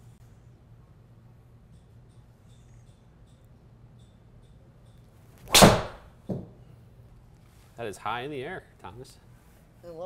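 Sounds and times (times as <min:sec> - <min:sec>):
golf driver striking ball: 0:05.5 - 0:06.1.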